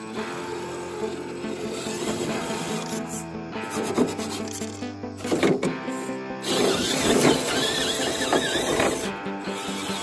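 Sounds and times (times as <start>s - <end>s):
rough rubbing scraping noise: 0.0s - 9.1s
background music melody: 0.0s - 10.0s.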